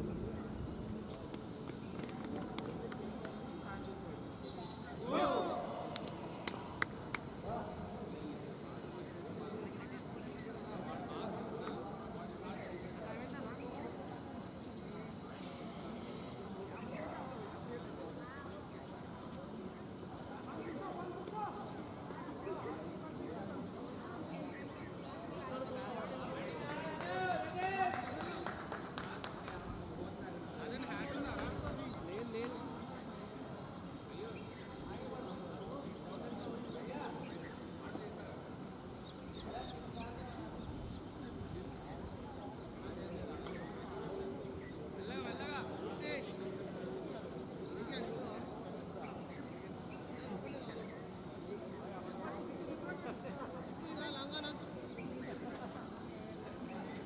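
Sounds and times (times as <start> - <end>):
distant indistinct voices: 0.0 - 57.0.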